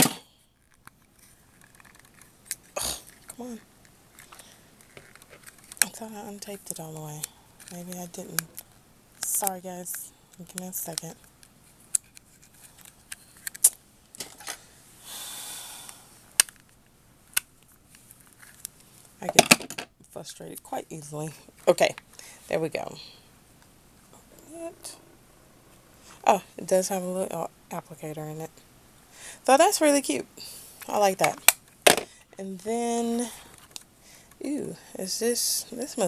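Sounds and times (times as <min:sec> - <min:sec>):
fingers picking at tape: 0:00.0 - 0:13.8
packaging clicks and snaps: 0:00.6 - 0:03.4, 0:04.1 - 0:05.9, 0:11.9 - 0:14.3, 0:16.4 - 0:18.8.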